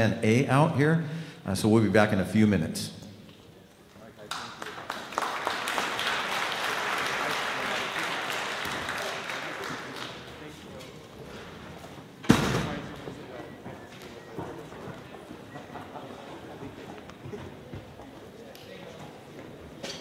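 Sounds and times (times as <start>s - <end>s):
concert audience noise: 2.2s - 20.0s
loud thud: 12.2s - 12.9s.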